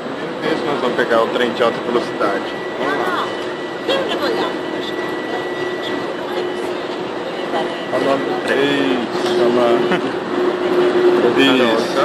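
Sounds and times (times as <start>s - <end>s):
electric train humming: 0.0s - 12.0s
voices: 0.2s - 12.0s
faint high whine: 0.4s - 9.9s.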